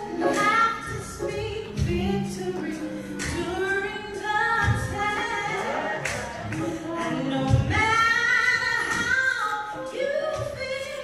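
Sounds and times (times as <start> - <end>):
woman singing gospel song: 0.0 - 11.0.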